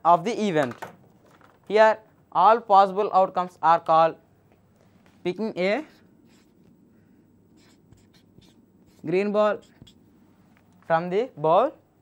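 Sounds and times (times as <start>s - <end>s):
marker scratching on paper: 5.8s - 6.7s, 7.5s - 10.2s.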